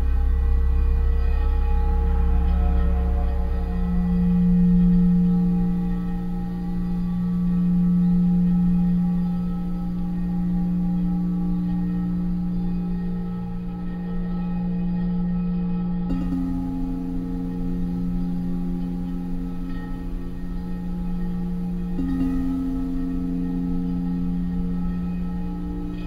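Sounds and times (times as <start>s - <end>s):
singing bowls ringing: 0.0s - 26.0s.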